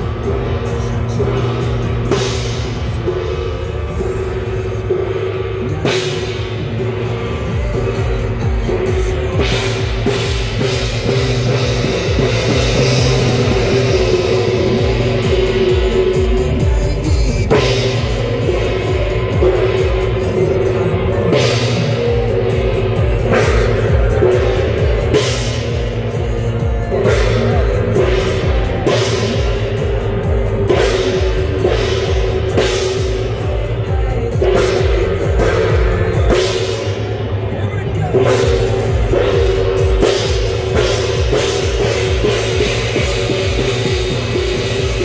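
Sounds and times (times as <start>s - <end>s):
drumming: 0.0s - 45.0s
sustained pitched tones: 0.0s - 45.0s.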